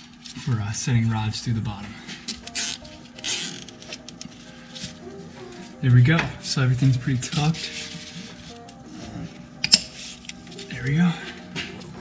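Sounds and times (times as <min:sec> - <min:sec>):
faint background music: 0:00.0 - 0:12.0
rubber hoses rustling and scraping: 0:06.8 - 0:12.0.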